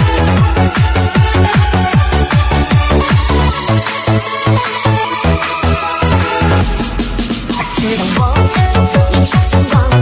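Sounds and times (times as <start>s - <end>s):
fast kick drum beat: 0.0s - 3.6s, 6.6s - 10.0s
electronic dance music: 0.0s - 10.0s
pulsing bass: 0.0s - 10.0s.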